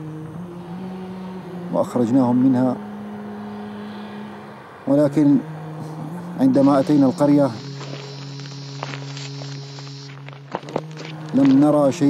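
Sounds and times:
low hum: 0.0s - 12.0s
faint hiss: 6.6s - 11.2s.

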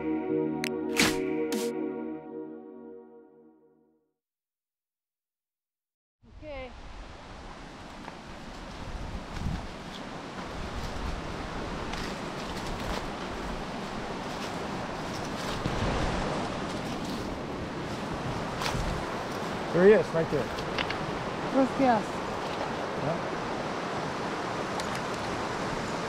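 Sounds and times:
wind buffeting microphone: 8.3s - 26.0s
river water rushing: 9.8s - 26.0s.

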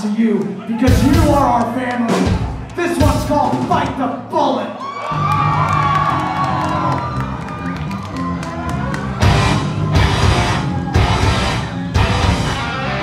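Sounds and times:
crowd cheering: 0.0s - 3.6s, 4.7s - 13.0s
punk band playing live: 0.8s - 4.2s, 5.2s - 13.0s.

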